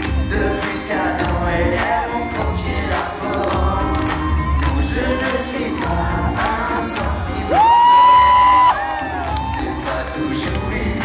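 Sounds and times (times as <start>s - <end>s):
live pop-rock band: 0.0s - 11.0s
audience cheering: 7.5s - 10.1s.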